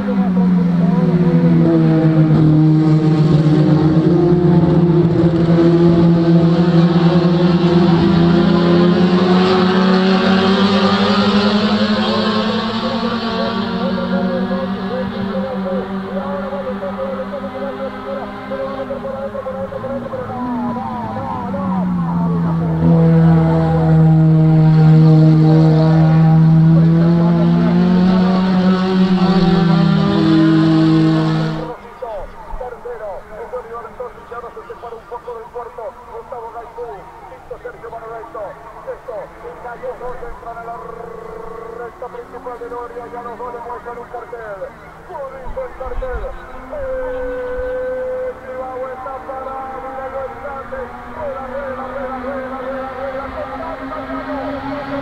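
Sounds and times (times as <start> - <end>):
racing car engines passing: 0.0 - 55.0.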